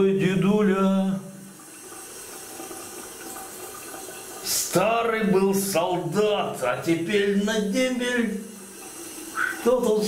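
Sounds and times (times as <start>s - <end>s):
water running from a tap: 0.0s - 10.0s.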